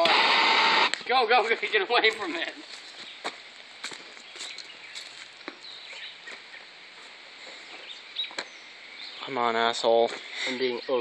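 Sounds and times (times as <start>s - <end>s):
outdoor background noise: 0.0s - 11.0s
footsteps on dirt and stones: 0.9s - 10.6s.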